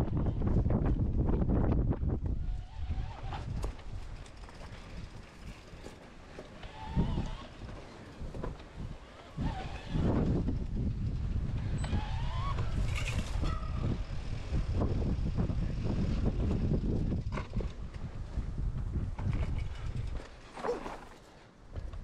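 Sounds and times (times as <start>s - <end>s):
wind buffeting microphone: 0.0s - 20.5s
wavering squeal: 11.8s - 14.0s.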